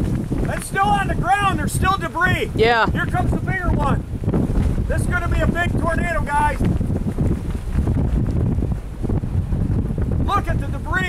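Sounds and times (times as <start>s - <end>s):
storm wind buffeting microphone: 0.0s - 11.0s.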